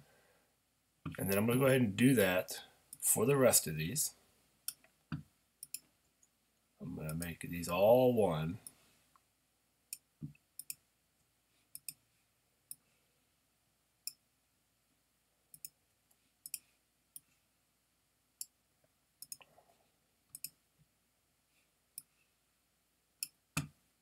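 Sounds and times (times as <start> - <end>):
computer mouse clicking: 10.6 - 10.8, 11.8 - 12.0, 16.4 - 16.6, 20.3 - 20.6.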